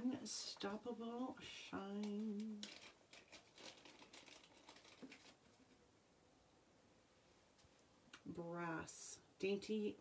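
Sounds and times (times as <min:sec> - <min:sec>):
hands handling small objects: 0:02.0 - 0:05.8.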